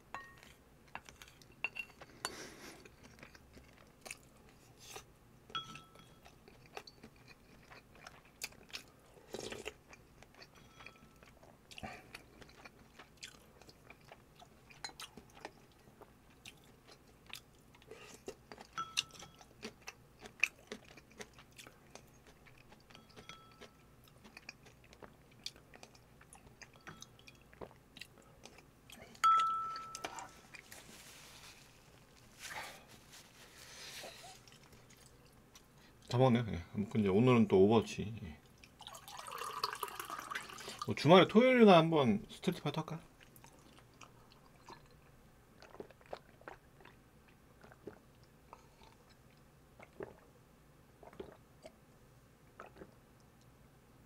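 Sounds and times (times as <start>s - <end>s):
spoon clinking on ceramic bowl: 0.1s - 0.5s, 1.6s - 2.0s, 5.5s - 6.3s, 18.7s - 19.4s, 22.9s - 23.8s, 29.2s - 30.3s
man chewing: 0.3s - 5.1s, 5.7s - 36.1s, 43.2s - 50.3s, 51.0s - 51.9s, 52.5s - 53.5s.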